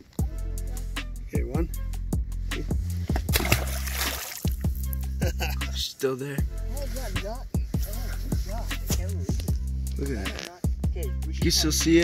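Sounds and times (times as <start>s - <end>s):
music with steady beat and bass: 0.0s - 12.0s
fish splashing into water: 3.2s - 4.8s.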